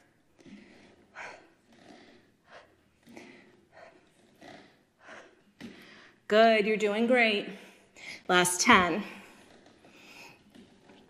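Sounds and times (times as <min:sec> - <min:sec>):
woman breathing quickly: 0:00.0 - 0:06.3, 0:07.5 - 0:08.3, 0:09.0 - 0:10.6.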